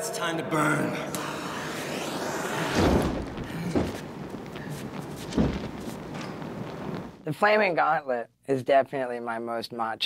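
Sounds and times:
fire burning with a roar: 1.1s - 7.2s
deep thumps: 2.0s - 7.2s.

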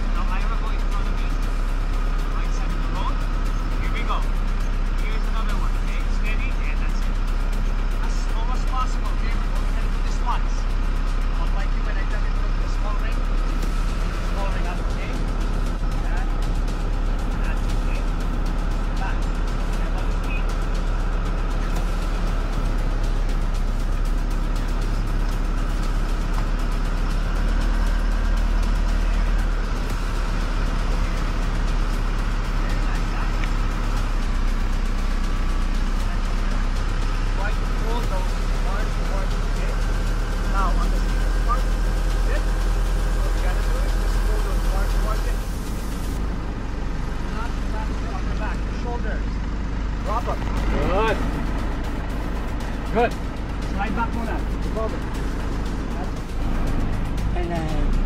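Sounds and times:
car engine and tyres droning: 0.0s - 58.0s.

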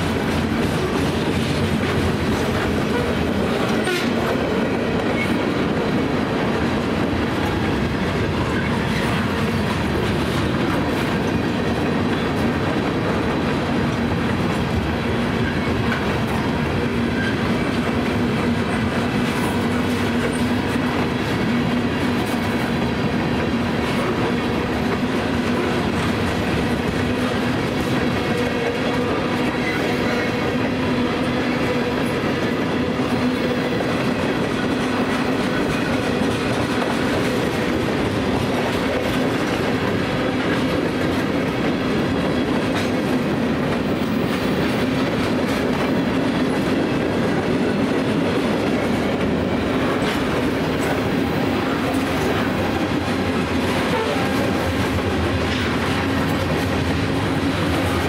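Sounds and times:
freight train wheels rumbling: 0.0s - 58.0s.

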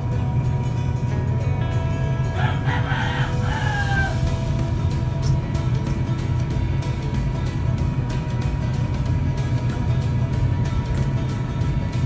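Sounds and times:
background music: 0.0s - 12.0s
rooster crowing: 2.3s - 4.5s.

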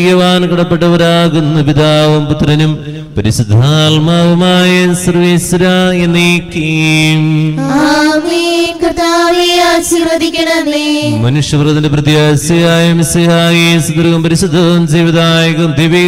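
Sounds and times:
man chanting into a microphone: 0.0s - 7.7s, 11.0s - 16.0s.

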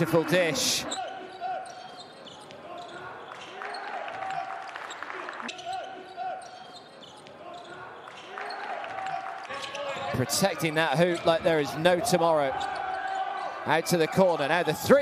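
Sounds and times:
players' voices: 0.0s - 15.0s
sneakers squeaking: 0.8s - 13.6s.

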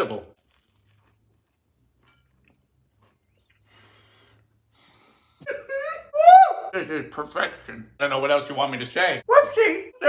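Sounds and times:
man breathing while chewing: 3.3s - 5.4s.

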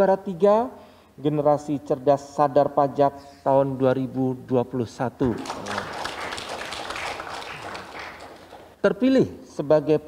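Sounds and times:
audience applauding: 5.3s - 8.8s.

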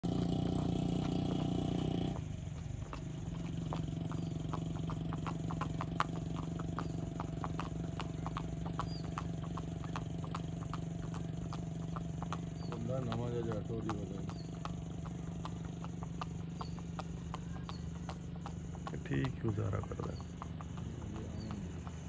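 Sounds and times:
horse hooves on paved road: 0.0s - 22.0s.

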